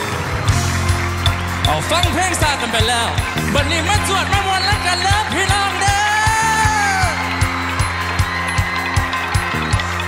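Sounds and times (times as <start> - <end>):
band music: 0.0 - 10.0.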